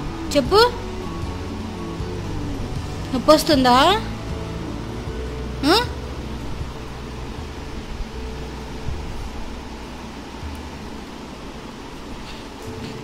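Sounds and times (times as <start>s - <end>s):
background hiss: 0.0s - 13.0s
low hum: 0.0s - 13.0s.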